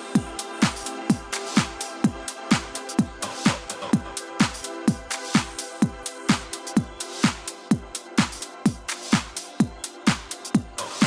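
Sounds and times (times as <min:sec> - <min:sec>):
house music: 0:00.0 - 0:11.0
kick drum beat: 0:00.0 - 0:11.0.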